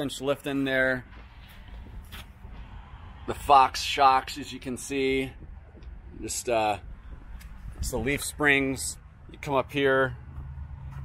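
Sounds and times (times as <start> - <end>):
faint low rumble: 1.0 - 9.4.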